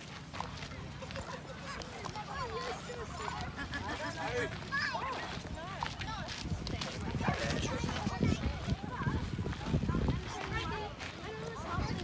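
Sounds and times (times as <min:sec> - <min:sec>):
children and adults talking: 0:00.0 - 0:12.0.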